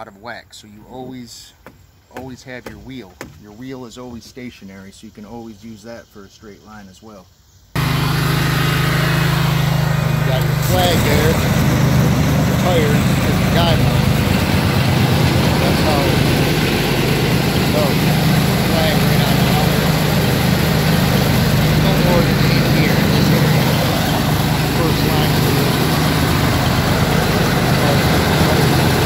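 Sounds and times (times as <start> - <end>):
greens aerifier engine pulsing: 7.8 - 29.0.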